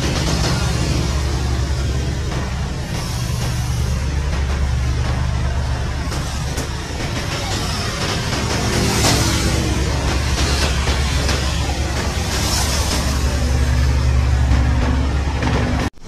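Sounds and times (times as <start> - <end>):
helicopter rotor drone: 0.0 - 16.0.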